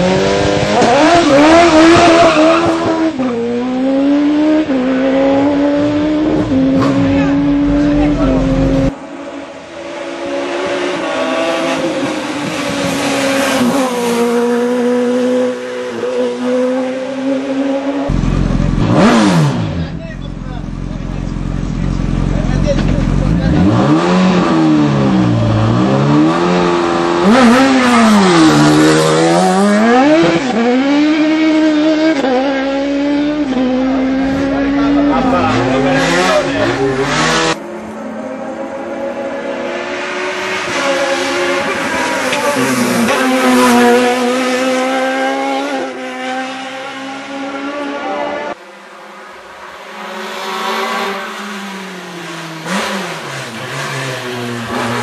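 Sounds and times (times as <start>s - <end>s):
race car engines at full throttle: 0.0s - 55.0s
race car passing by: 23.5s - 55.0s.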